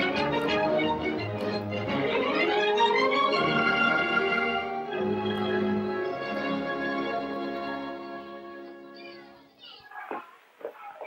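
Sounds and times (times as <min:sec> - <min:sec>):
children calling and chattering: 0:05.0 - 0:11.0.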